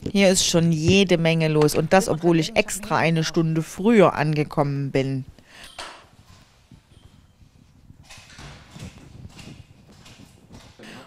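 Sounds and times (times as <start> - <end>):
footsteps on hard floor: 0.0 - 2.1, 5.9 - 10.8.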